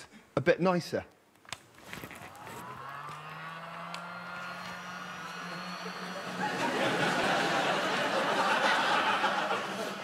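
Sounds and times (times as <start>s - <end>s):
vacuum cleaner motor whine: 2.3s - 8.1s.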